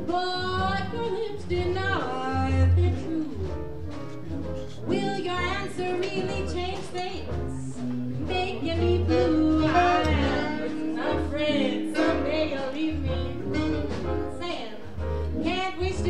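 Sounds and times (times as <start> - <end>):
drums: 0.0 - 16.0
guitar: 0.0 - 16.0
alto saxophone melody: 8.2 - 14.6.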